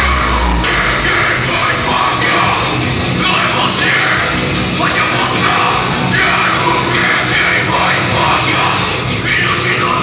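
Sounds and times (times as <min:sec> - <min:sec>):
heavy metal band playing live: 0:00.0 - 0:10.0.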